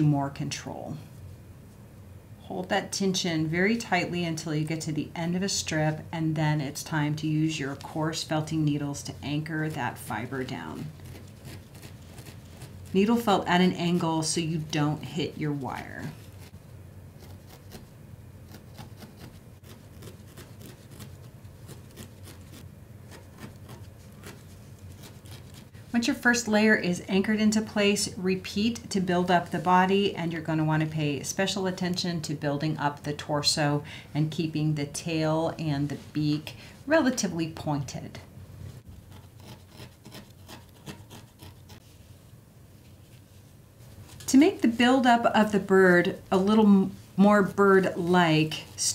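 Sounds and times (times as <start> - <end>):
wool rubbing and rustling: 7.1 - 26.2, 38.7 - 48.9.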